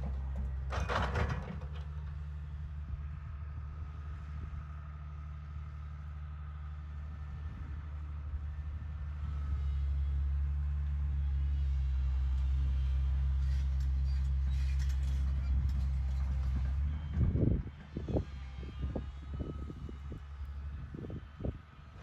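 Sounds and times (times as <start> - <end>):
excavator diesel engine drone: 0.0 - 22.0.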